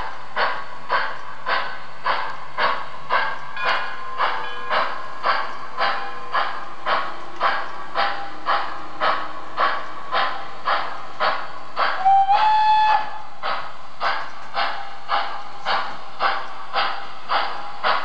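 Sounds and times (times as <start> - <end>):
model train steam chuffs: 0.0 - 18.0
train whistle: 11.9 - 13.4.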